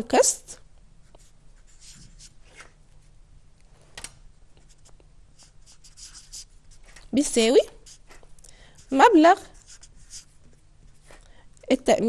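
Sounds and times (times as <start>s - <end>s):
marker scratching on whiteboard: 1.0s - 2.7s, 4.6s - 6.9s, 7.6s - 8.2s, 8.8s - 11.1s.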